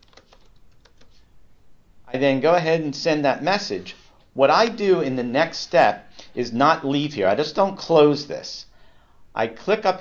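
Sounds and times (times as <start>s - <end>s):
faint keyboard typing: 0.0s - 1.3s.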